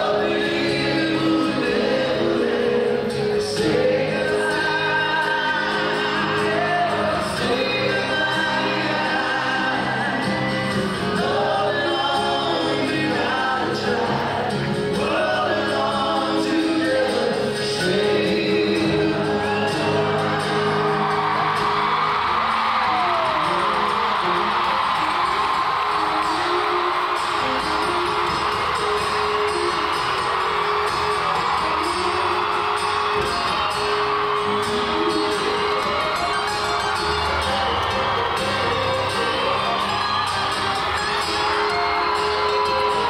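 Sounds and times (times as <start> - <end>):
crowd whooping and cheering: 0.0 - 17.3, 18.8 - 43.0
acoustic guitars playing ballad: 0.0 - 43.0.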